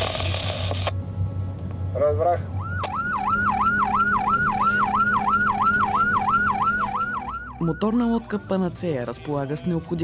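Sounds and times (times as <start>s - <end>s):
motor boat engine hum: 0.0s - 9.9s.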